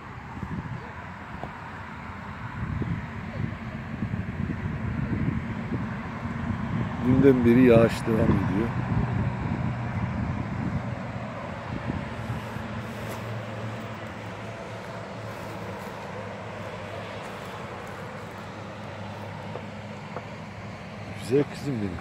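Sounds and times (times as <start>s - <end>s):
road traffic with engine hum: 0.0s - 22.0s.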